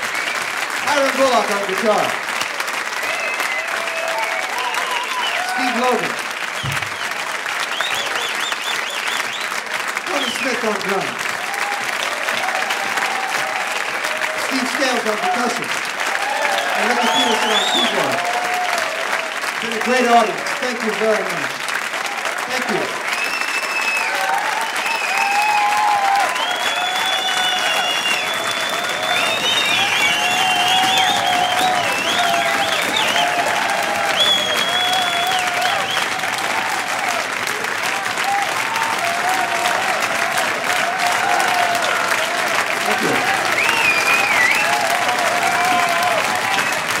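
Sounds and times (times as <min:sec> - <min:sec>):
whistles: 0:00.0 - 0:00.6, 0:03.1 - 0:05.5, 0:06.5 - 0:09.6, 0:16.8 - 0:18.2, 0:23.1 - 0:36.2, 0:43.4 - 0:44.9
audience applauding: 0:00.0 - 0:47.0
cheering shouts: 0:00.0 - 0:47.0.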